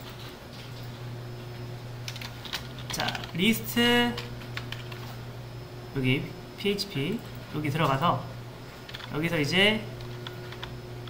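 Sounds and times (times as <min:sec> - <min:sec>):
steady low hum: 0:00.0 - 0:11.0
computer keyboard key presses: 0:08.9 - 0:09.2.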